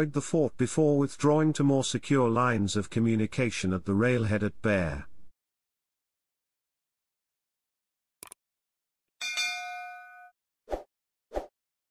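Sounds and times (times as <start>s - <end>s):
notification bell ding: 9.2s - 10.3s.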